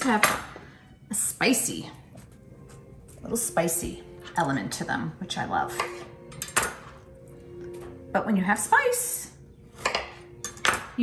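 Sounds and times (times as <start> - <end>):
soft background music: 0.0 - 11.0
kitchenware clink: 5.7 - 7.0.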